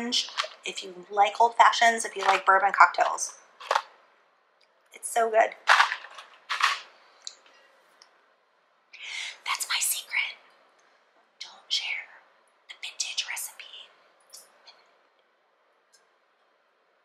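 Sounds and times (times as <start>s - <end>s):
woman whispering: 9.0s - 10.4s, 11.4s - 14.6s.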